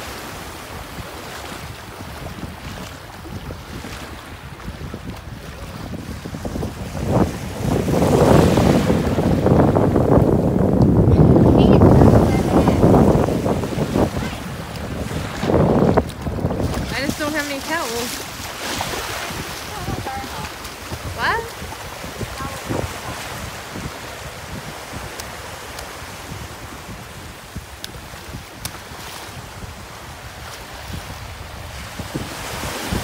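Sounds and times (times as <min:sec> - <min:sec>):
surf washing in shallow water: 0:00.0 - 0:33.0
wind buffeting microphone: 0:00.0 - 0:33.0.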